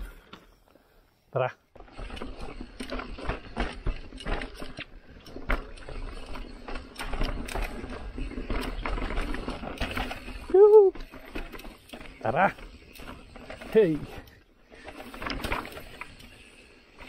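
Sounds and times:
bike knocking and rattling: 1.7 - 17.0.

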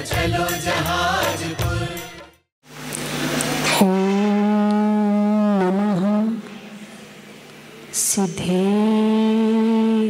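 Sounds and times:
woman chanting a held note: 3.7 - 6.8, 7.9 - 10.0.

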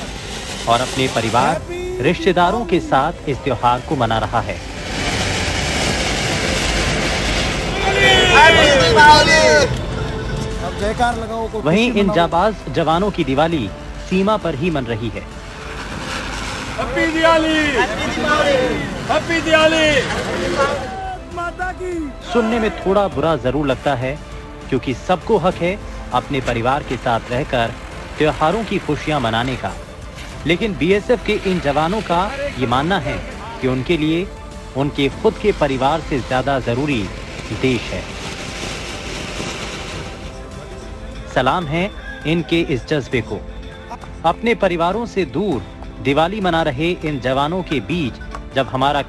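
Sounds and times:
firework fountain hissing: 0.0 - 49.0
men shouting and cheering: 1.3 - 3.9, 6.1 - 12.6, 16.6 - 23.9, 41.9 - 42.9.

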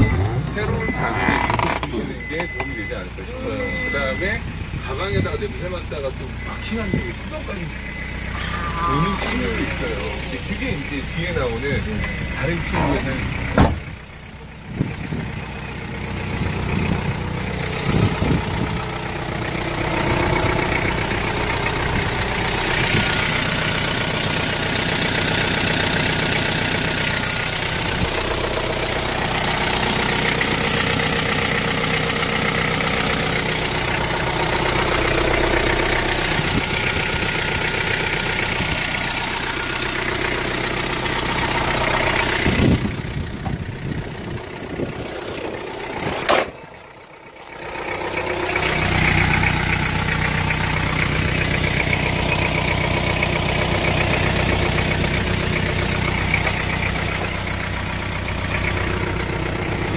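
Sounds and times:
diesel engine idling: 0.0 - 59.9
thin high whine: 8.3 - 10.4.

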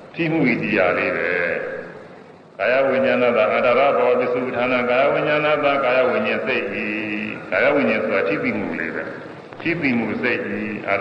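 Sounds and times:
man preaching: 0.1 - 2.0, 2.6 - 11.0.

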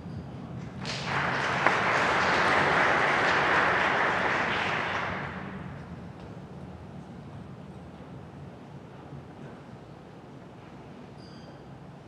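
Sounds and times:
audience applause: 0.7 - 5.8.

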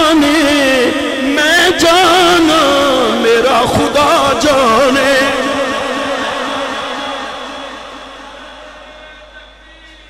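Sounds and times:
man singing through microphone: 0.0 - 10.0.

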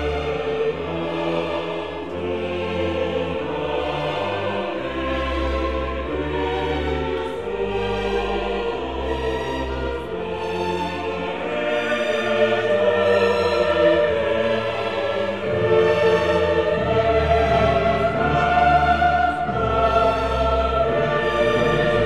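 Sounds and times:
choir singing held notes: 0.0 - 22.0
orchestra: 0.0 - 22.0.

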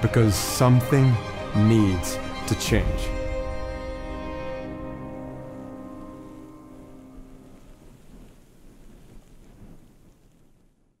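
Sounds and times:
background music: 0.0 - 8.1
steady hiss: 0.0 - 11.0
low rumble: 1.2 - 10.3.

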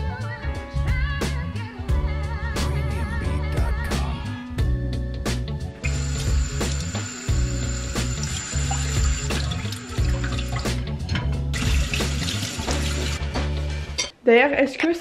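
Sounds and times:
background music with bass beat: 0.0 - 14.0
dishes being washed: 8.0 - 13.2
tap running into sink: 8.3 - 13.2.

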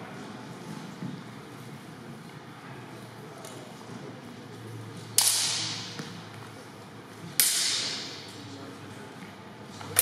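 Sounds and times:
practice swords clashing: 5.1 - 6.2, 7.2 - 8.5, 9.8 - 10.0.

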